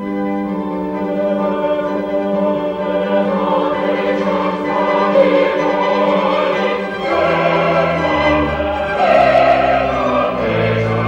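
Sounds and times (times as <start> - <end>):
instrumental accompaniment: 0.0 - 11.0
mixed choir singing: 1.0 - 11.0.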